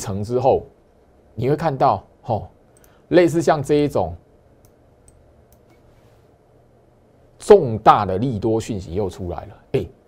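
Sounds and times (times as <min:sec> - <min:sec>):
computer mouse clicks: 0:02.7 - 0:03.0, 0:04.6 - 0:05.9.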